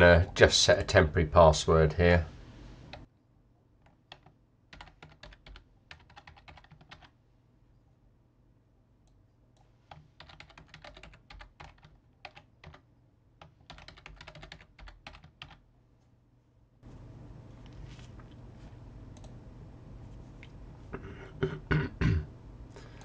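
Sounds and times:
computer keyboard typing: 3.8 - 7.1, 9.9 - 12.8, 13.4 - 15.6.

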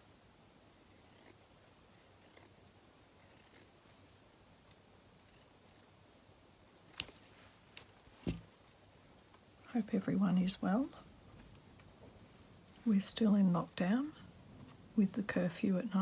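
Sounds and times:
scissors snipping fabric: 6.9 - 7.2.

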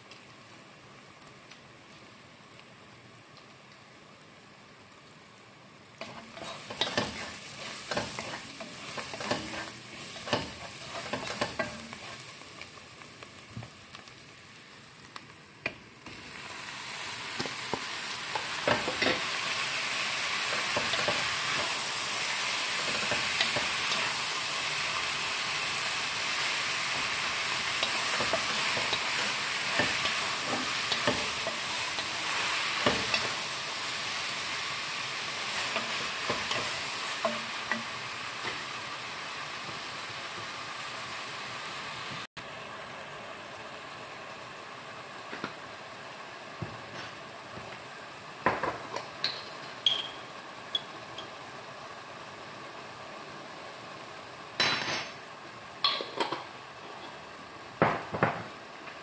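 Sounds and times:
meat sizzling: 0.0 - 59.0.

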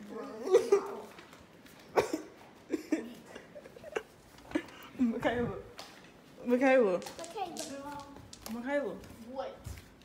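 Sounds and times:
girl talking: 7.0 - 8.3.

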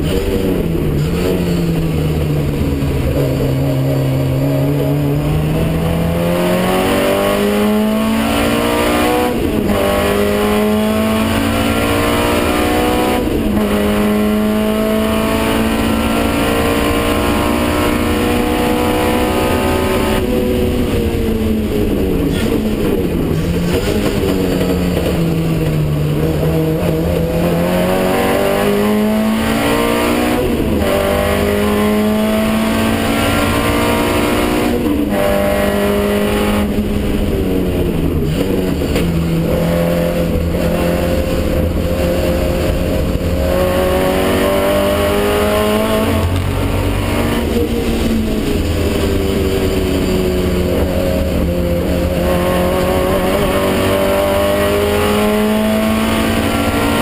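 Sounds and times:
racing car engine under load: 0.0 - 57.0.

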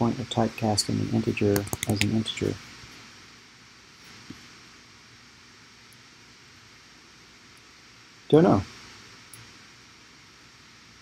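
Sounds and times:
low microphone hiss: 0.0 - 11.0.

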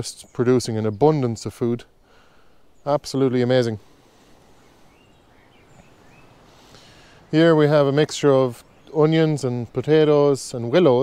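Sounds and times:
distant birds chirping: 0.0 - 11.0
outdoor background noise: 0.0 - 11.0.

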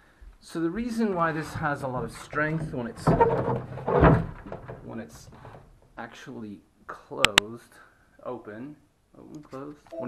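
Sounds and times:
wooden box knocks and rubbing: 0.8 - 6.0
wooden thump: 0.8 - 6.0.

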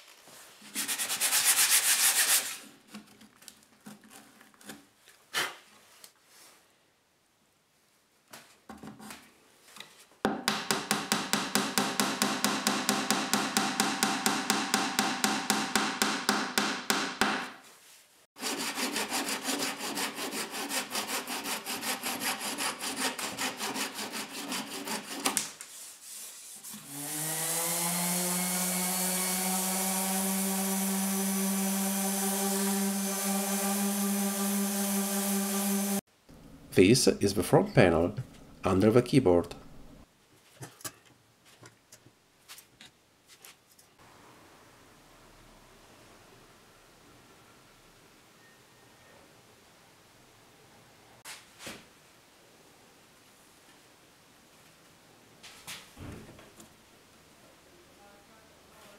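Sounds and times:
hand saw cutting wood: 0.8 - 2.6, 18.4 - 25.4, 26.7 - 36.0
small electric motor whine: 26.8 - 36.0.

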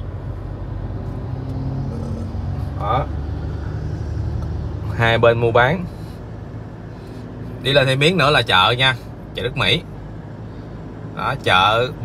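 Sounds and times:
car engine and road noise: 0.0 - 12.0.

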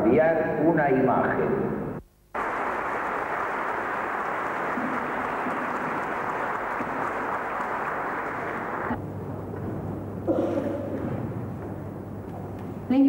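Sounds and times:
muffled audience applause: 2.3 - 9.0.

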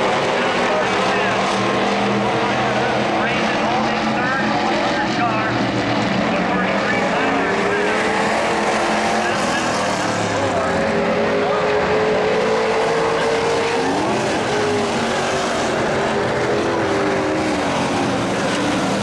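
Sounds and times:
race car engines: 0.0 - 19.0.

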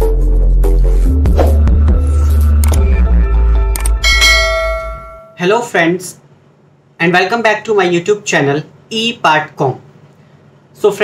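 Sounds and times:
bell ringing: 4.0 - 5.4.

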